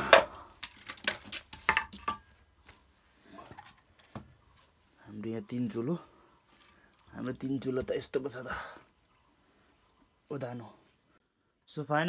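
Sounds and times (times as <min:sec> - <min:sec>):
objects knocking and clattering: 0:00.0 - 0:02.4.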